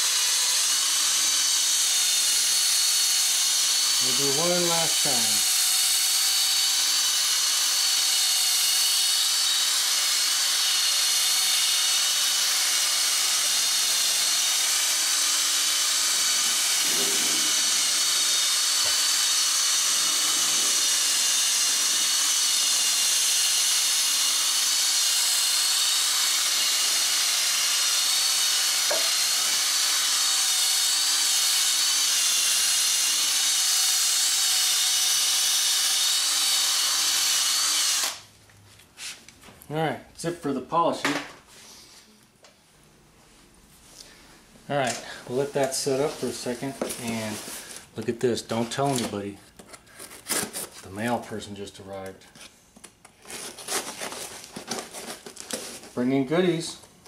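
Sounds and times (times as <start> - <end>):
power drill whining: 0.0 - 38.3, 45.0 - 49.2
polishing ball hissing on plastic: 16.4 - 18.0, 19.9 - 21.0.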